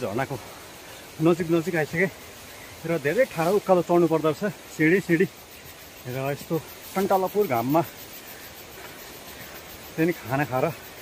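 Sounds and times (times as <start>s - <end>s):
man speaking: 0.0s - 2.2s, 2.8s - 5.4s, 6.0s - 8.0s, 9.9s - 11.0s
steady background hiss: 0.0s - 11.0s.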